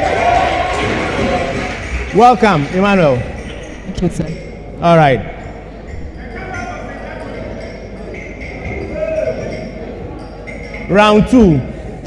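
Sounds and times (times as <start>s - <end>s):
hall background noise: 0.0s - 12.0s.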